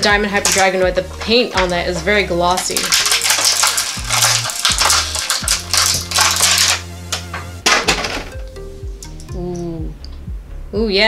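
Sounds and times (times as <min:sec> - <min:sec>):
plastic bag crinkling: 0:00.0 - 0:06.8
background music with bass line: 0:00.0 - 0:11.0.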